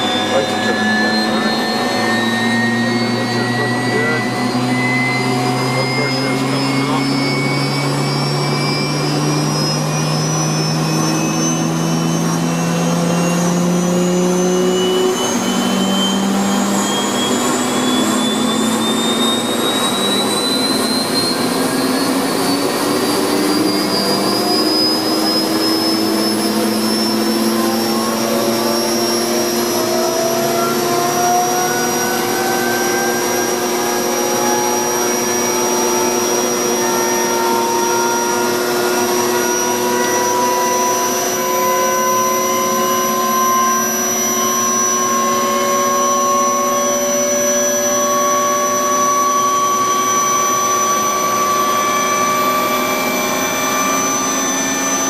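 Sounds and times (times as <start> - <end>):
continuous rush: 0.0 - 55.0
turbine engine whine: 0.0 - 55.0.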